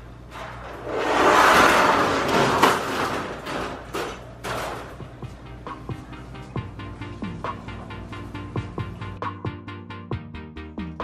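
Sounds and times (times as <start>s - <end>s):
wire crate scraping on tile: 0.3s - 5.0s.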